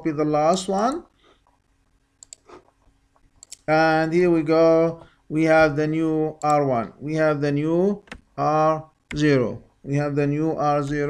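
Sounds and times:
low room noise: 0.0s - 11.0s
computer mouse clicks: 2.2s - 3.7s.

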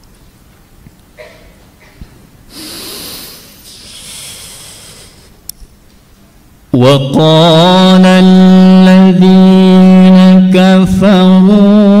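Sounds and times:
person breathing in deeply: 2.5s - 5.4s.

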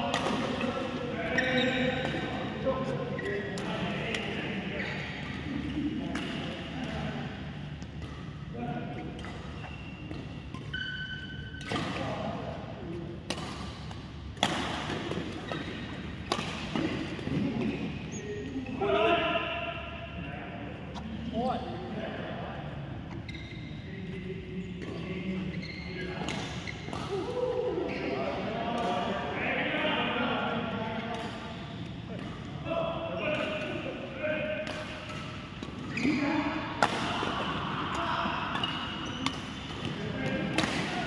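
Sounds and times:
people talking in echoing hall: 0.0s - 10.5s, 11.4s - 41.0s
shoe squeaks on court: 1.3s - 2.2s, 4.8s - 5.3s, 9.6s - 11.6s, 23.1s - 23.8s, 25.5s - 26.9s, 38.6s - 39.3s
racket striking shuttlecock: 13.3s - 17.1s, 38.5s - 41.0s.

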